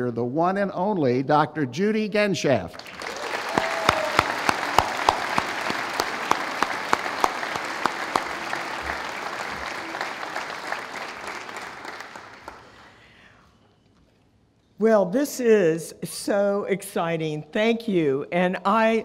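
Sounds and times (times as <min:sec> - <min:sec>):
sharp claps close by: 0:02.8 - 0:12.8
audience applauding: 0:02.8 - 0:13.1.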